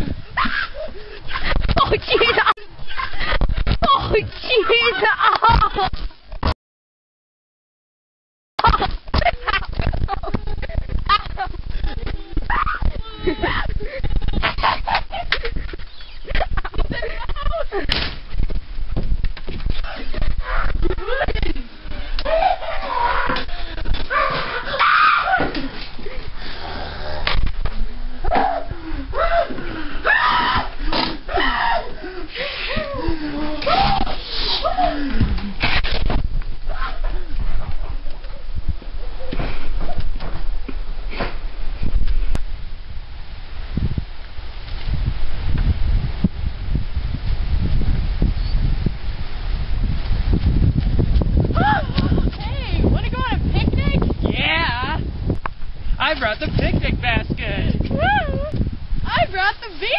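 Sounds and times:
person yelping and crying: 11.8s - 14.4s, 22.2s - 25.8s, 28.2s - 35.2s.

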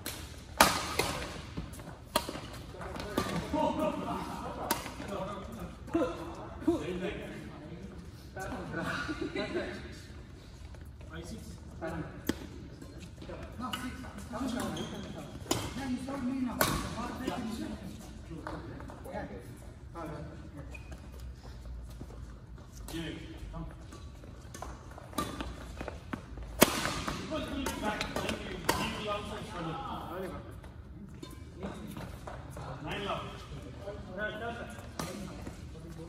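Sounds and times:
racket hitting shuttlecock: 0.0s - 3.5s, 24.6s - 29.0s.

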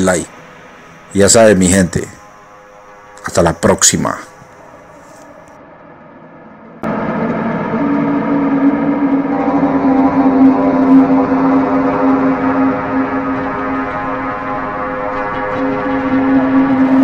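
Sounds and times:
deep steady tone: 0.0s - 17.0s
sustained drone of held tones: 0.0s - 17.0s.

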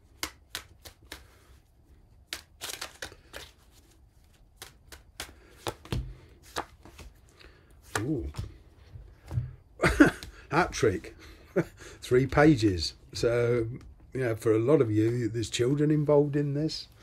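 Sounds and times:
cards being shuffled: 0.0s - 9.5s.

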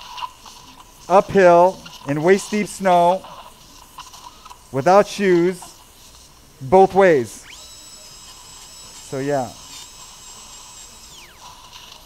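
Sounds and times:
high-pitched drill whining: 0.0s - 12.0s.

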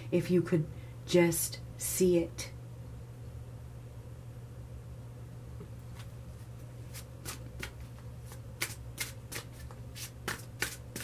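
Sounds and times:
cards being shuffled: 6.9s - 11.0s.

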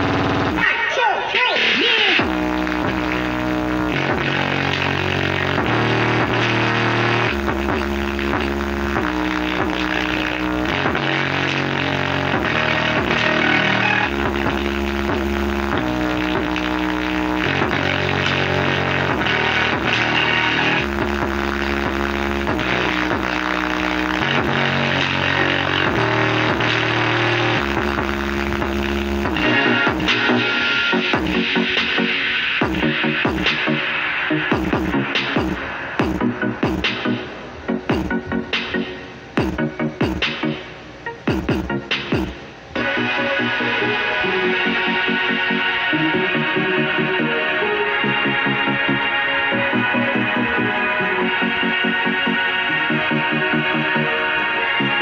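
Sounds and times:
bass-heavy music through woofer: 0.0s - 0.7s, 1.8s - 55.0s.

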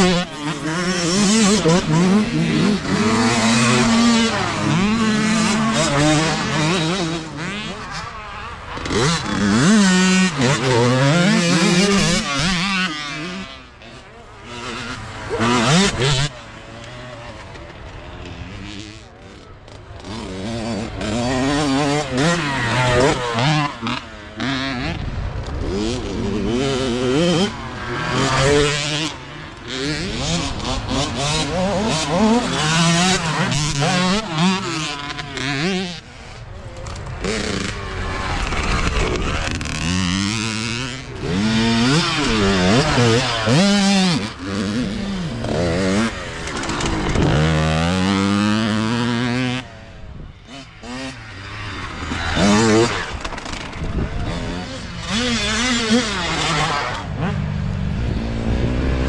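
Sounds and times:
dirt bike engines revving: 0.0s - 59.0s.

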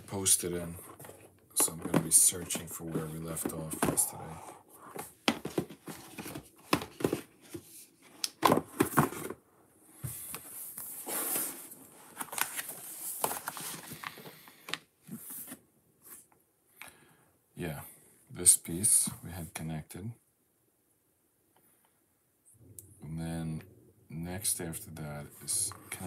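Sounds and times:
booklet pages turning and rustling: 0.0s - 9.4s, 10.2s - 16.3s.

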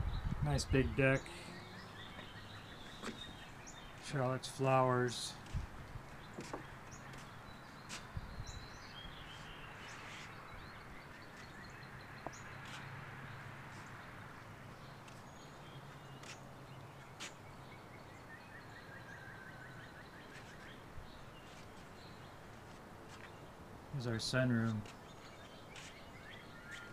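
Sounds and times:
songbirds chirping and trilling: 0.0s - 26.9s.

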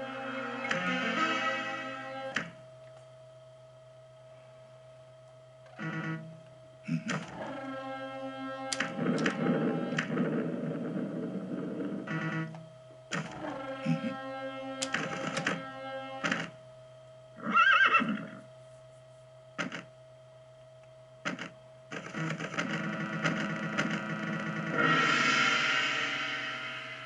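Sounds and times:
slot machine music: 0.0s - 2.4s, 7.2s - 11.1s, 13.2s - 16.4s, 22.0s - 27.0s
horse whinny: 17.4s - 18.4s.

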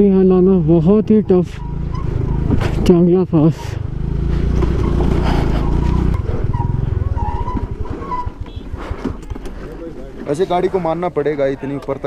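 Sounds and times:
scooter engine idling: 3.3s - 12.0s.

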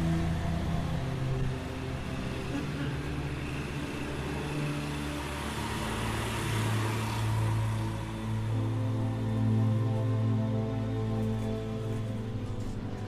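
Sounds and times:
music with sustained low notes: 0.0s - 13.0s.

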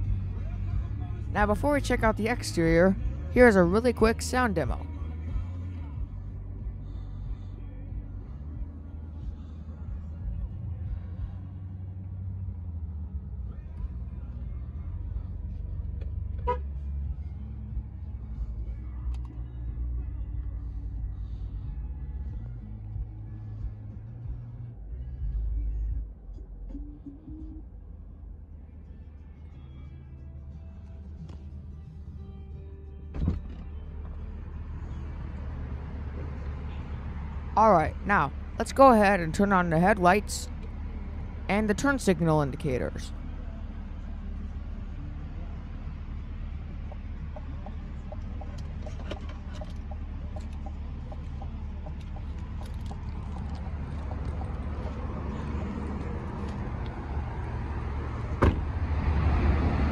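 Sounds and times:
bass-heavy music in car: 0.0s - 59.9s.

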